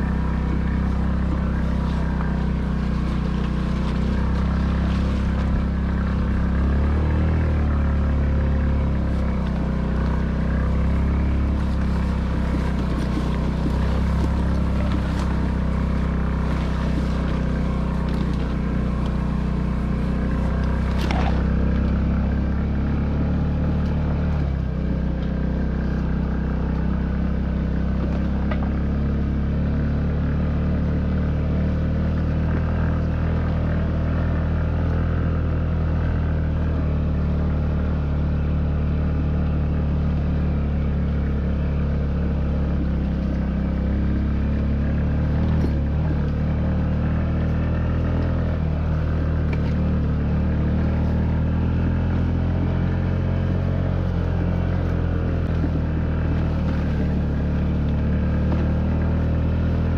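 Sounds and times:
scooter engine running: 0.0s - 59.9s.

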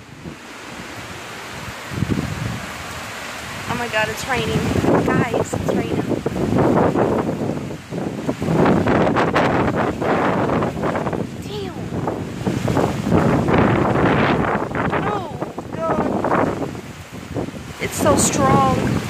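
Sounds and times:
heavy rain: 0.0s - 19.0s
wind buffeting microphone: 0.0s - 19.0s.

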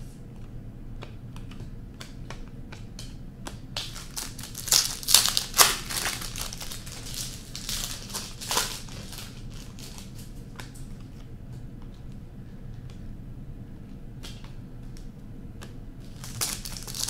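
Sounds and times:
trading cards clicking: 0.3s - 12.2s
plastic wrapper crinkling: 3.8s - 10.3s, 16.0s - 17.0s.

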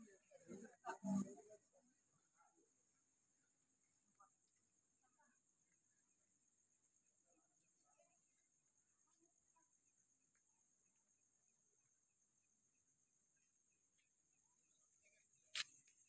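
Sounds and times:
faint rapid chirps: 0.0s - 16.0s
faint high-pitched trill: 0.5s - 1.6s.

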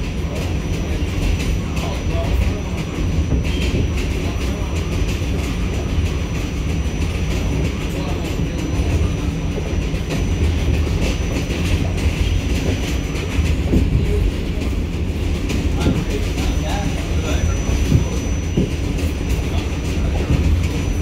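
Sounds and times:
subway car wheels rumbling: 0.0s - 21.0s
wheels clacking over rail joints: 0.0s - 21.0s.

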